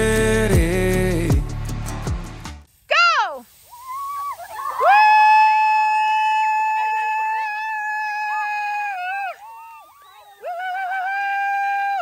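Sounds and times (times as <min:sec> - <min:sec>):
child's long high shout: 0:02.9 - 0:12.0.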